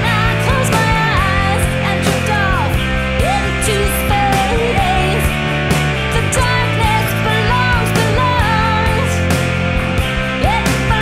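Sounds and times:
bending lead guitar line: 0:00.0 - 0:11.0
rock band instrumental: 0:00.0 - 0:11.0.

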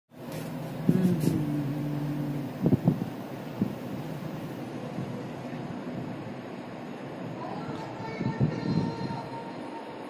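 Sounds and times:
hummed tone: 0:00.7 - 0:04.7
low rumble: 0:00.8 - 0:04.7
wind noise on microphone: 0:00.8 - 0:05.2, 0:08.0 - 0:09.3.

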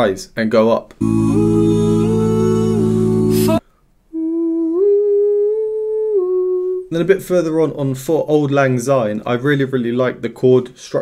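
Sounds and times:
male group singing a chord: 0:01.0 - 0:03.6
man humming: 0:01.0 - 0:06.9.

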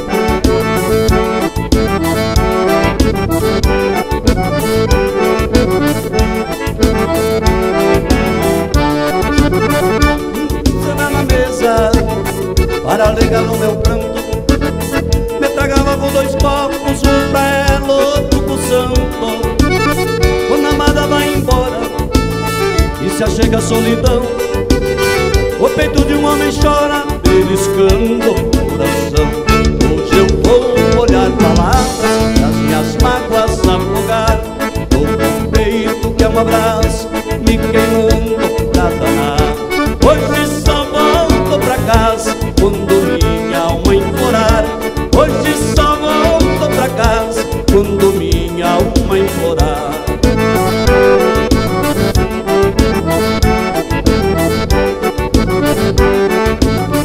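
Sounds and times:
accordion melody: 0:00.0 - 0:57.0
live dance band playing: 0:00.0 - 0:57.0.

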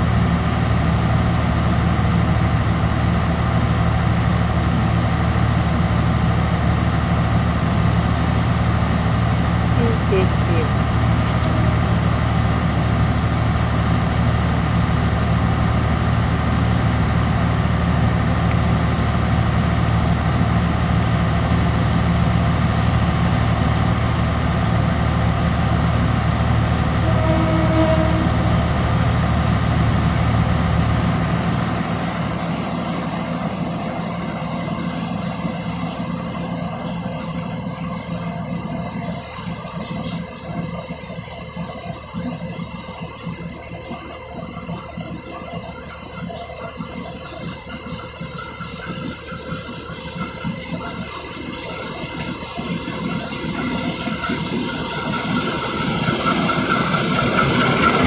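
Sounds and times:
diesel train engine idling: 0:00.0 - 0:58.0.

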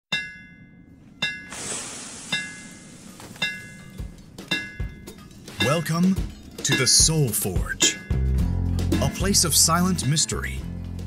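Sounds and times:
bell-like metallic strikes: 0:00.1 - 0:01.6, 0:02.3 - 0:10.6
hissing wash: 0:01.5 - 0:04.8.

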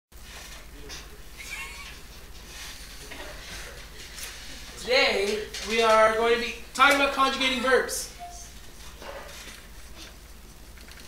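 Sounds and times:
low hum and hiss: 0:00.2 - 0:11.0.

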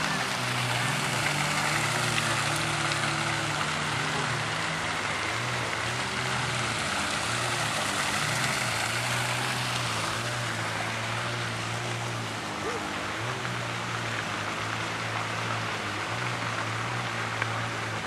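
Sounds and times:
fountain water splashing: 0:00.0 - 0:18.0
low engine drone: 0:00.0 - 0:18.0.

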